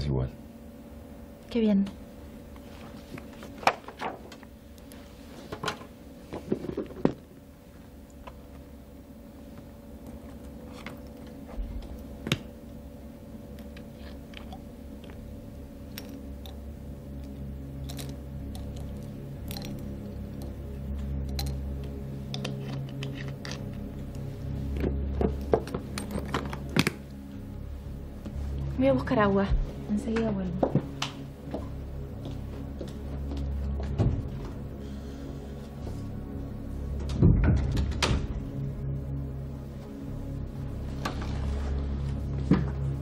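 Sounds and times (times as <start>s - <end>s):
faint steady hum: 0.0s - 43.0s
low music drone: 0.0s - 43.0s.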